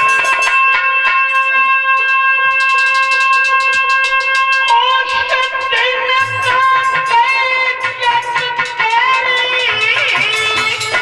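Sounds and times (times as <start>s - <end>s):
rapid light percussion strokes: 0.0s - 11.0s
harmonium holding a chord: 3.2s - 9.8s.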